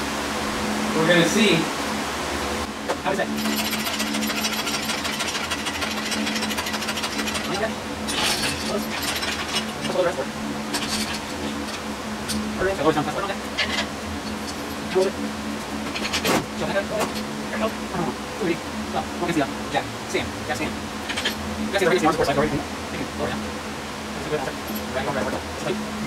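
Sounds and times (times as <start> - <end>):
metal hoist knocks and clanks: 3.2 - 15.1, 15.8 - 17.3, 21.0 - 22.4
casters rattling on concrete: 3.3 - 12.5, 21.0 - 22.2.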